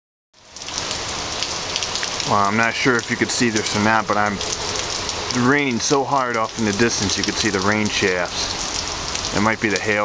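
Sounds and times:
heavy rain pouring: 0:00.4 - 0:10.0.

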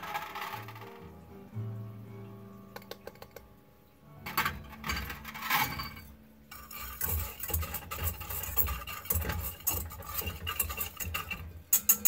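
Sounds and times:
wire whisk scraping metal pan: 0:00.0 - 0:00.8, 0:04.6 - 0:12.0
powder pouring into pan: 0:00.0 - 0:01.0, 0:05.4 - 0:11.8.

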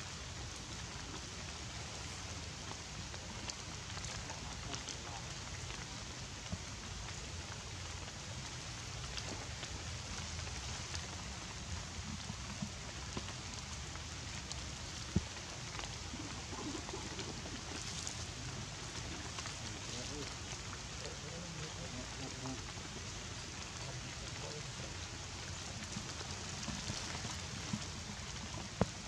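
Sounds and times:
rain falling on leaves: 0:00.0 - 0:29.0
water drips: 0:00.0 - 0:29.0.

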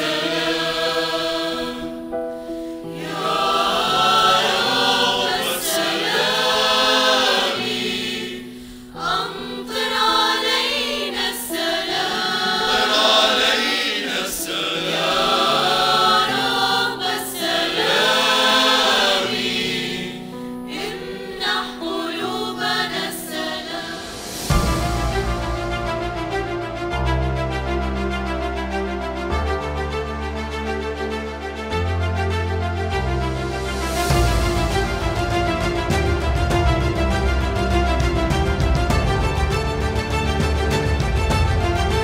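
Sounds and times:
church choir singing a hymn: 0:00.0 - 0:28.3.

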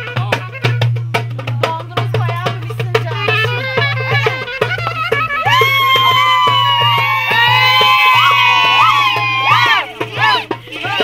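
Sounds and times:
clarinet playing folk dance music: 0:00.0 - 0:01.3, 0:02.9 - 0:11.0.

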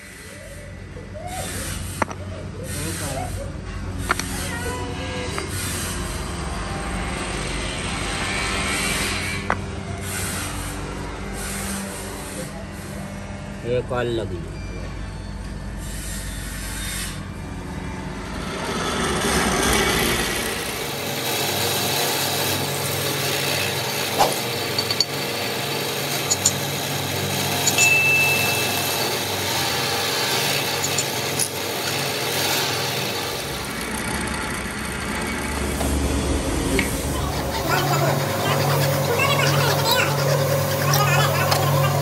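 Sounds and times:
drill press boring into wood: 0:20.4 - 0:35.5.

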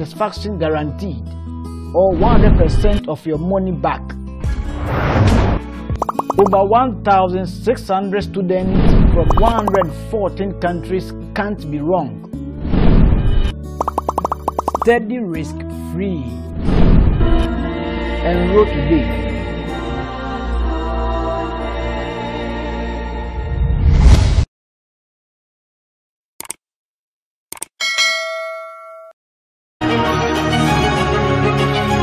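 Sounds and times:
background music: 0:03.0 - 0:08.0, 0:09.2 - 0:12.6, 0:13.6 - 0:16.6, 0:17.3 - 0:23.6, 0:29.8 - 0:32.0
cartoon pop sound effects: 0:06.0 - 0:06.6, 0:09.2 - 0:09.9, 0:13.8 - 0:14.9
person speaking voiceover: 0:06.4 - 0:06.8, 0:09.2 - 0:10.0
bright bell ding: 0:27.8 - 0:29.2.

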